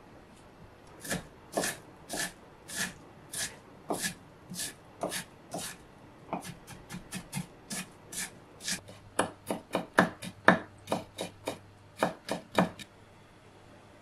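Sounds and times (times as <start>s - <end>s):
knife chopping on wooden board: 1.0s - 12.8s.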